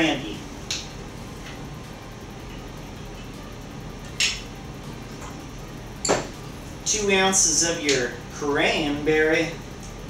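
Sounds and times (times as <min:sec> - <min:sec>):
barware clinking: 0:06.0 - 0:06.3.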